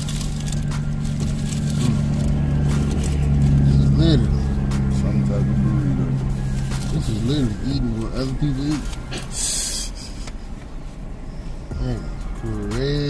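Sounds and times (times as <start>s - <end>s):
paper wrappers rustling: 0.0s - 3.9s, 6.3s - 9.3s
car engine running hum: 0.0s - 13.0s
person murmuring: 1.7s - 2.2s.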